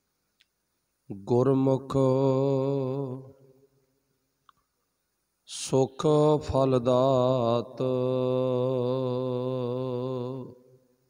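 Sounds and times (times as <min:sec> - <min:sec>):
man chanting: 0:01.1 - 0:03.4, 0:05.5 - 0:10.7.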